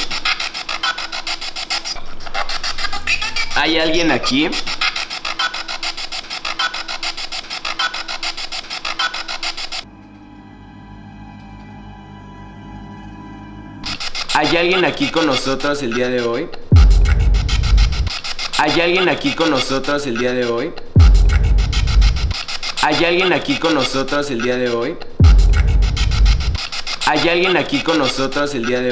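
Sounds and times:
rapid chopping radio static: 0.0 - 9.8, 13.8 - 28.9
eerie background music drone: 9.8 - 13.9
deep rumble: 16.8 - 18.1, 21.0 - 22.3, 25.2 - 26.6.

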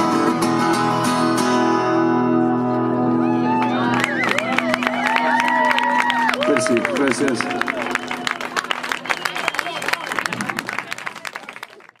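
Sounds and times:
small audience clapping: 3.6 - 12.0.

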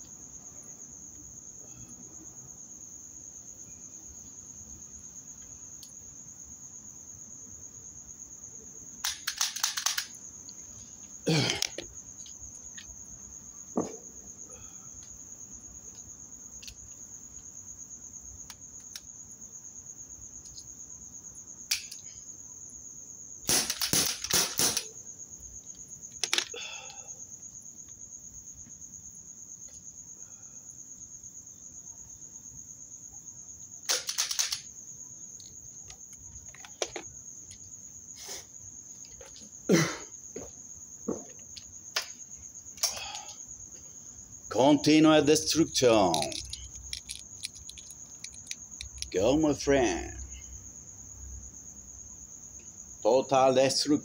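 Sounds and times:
crickets chirping: 0.0 - 54.0
gunshots cracking: 23.5 - 24.9.

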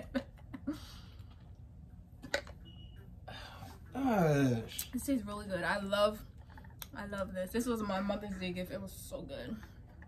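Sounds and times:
faint high-pitched beep: 2.6 - 3.2.

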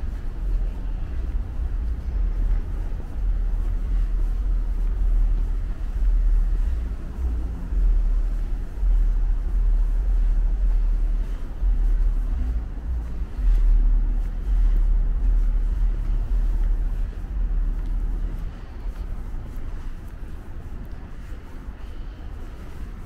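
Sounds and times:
city street traffic: 0.0 - 23.0
uneven low rumble: 0.0 - 23.0.

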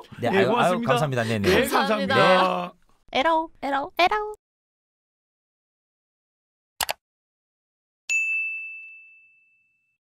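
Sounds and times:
bright bell ding: 8.1 - 10.0.

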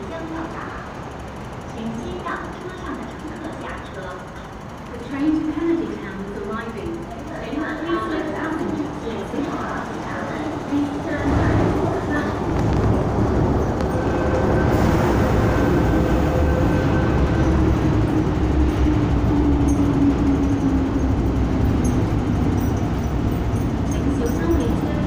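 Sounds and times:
train wheels rumbling on track: 0.0 - 25.0.

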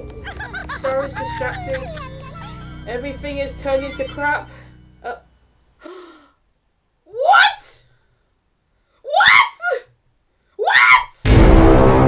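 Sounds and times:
woman gasping: 5.8 - 6.4
woman sighing: 5.8 - 6.4.

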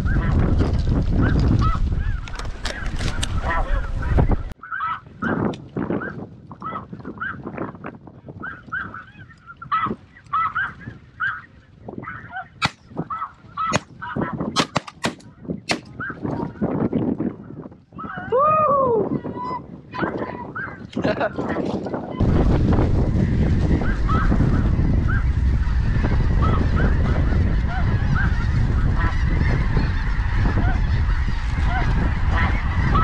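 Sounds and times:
wind rumble on microphone: 0.0 - 33.0
geese honking: 1.6 - 5.4, 8.4 - 15.1, 22.8 - 33.0.

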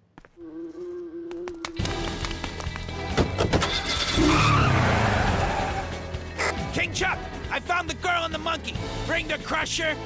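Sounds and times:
cartoon background music: 3.0 - 10.0
vehicle skidding: 3.6 - 6.0.

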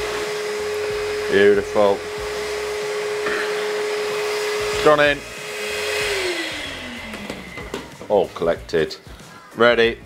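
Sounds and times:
ash vacuum whining: 0.0 - 8.6.

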